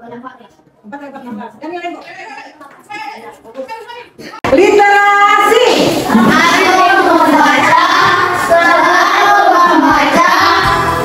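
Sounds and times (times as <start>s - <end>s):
backing music: 6.1s - 11.0s
children singing: 6.1s - 11.0s.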